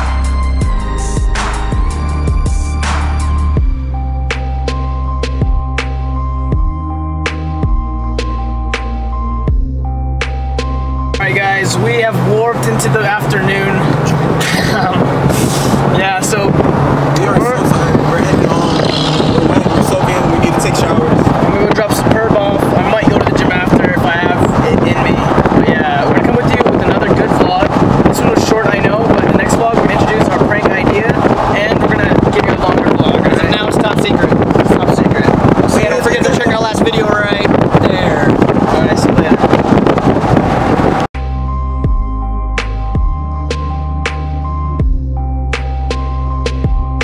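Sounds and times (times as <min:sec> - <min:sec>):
car road noise: 0:00.0 - 0:47.0
people talking and laughing: 0:13.9 - 0:16.4, 0:31.8 - 0:39.2.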